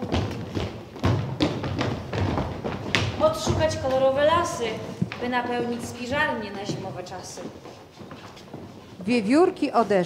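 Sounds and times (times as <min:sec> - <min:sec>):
footsteps on wooden stage: 0:00.0 - 0:10.0.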